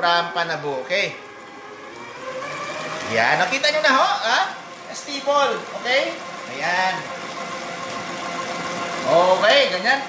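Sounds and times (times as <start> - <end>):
stand mixer motor hum: 0.0 - 10.0.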